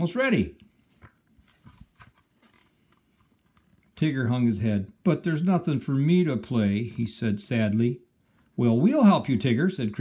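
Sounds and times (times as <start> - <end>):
paper page turning: 0.9 - 4.0.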